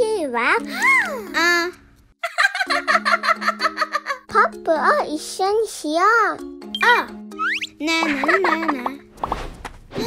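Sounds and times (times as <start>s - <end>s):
warbling cartoon sound effect: 6.8s - 7.8s.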